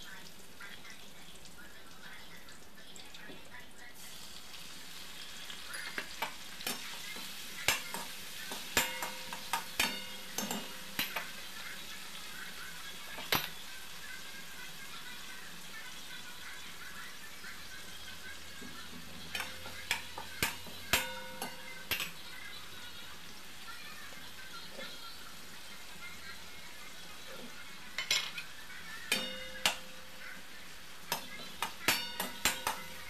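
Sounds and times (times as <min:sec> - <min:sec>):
vegetables sizzling in oil: 0:00.0 - 0:33.0
spatula tapping steel pan: 0:05.7 - 0:11.4, 0:18.9 - 0:22.2, 0:29.1 - 0:30.2, 0:31.1 - 0:33.0.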